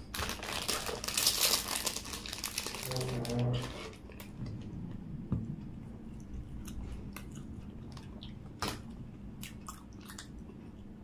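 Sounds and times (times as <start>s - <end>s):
food wrapper crackling: 0.0s - 4.3s.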